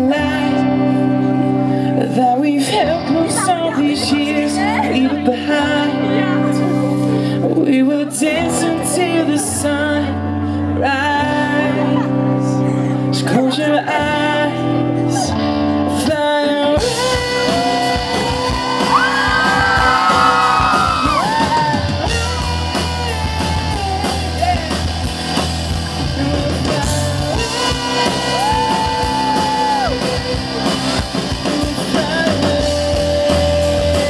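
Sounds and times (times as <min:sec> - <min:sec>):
person singing long notes: 0:00.0 - 0:24.9, 0:25.8 - 0:34.0
guitar: 0:00.0 - 0:34.0
live pop-rock band: 0:00.0 - 0:34.0.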